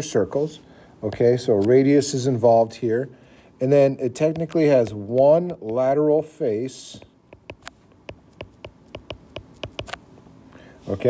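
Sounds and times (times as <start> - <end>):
stylus tapping on tablet screen: 7.3 - 10.0.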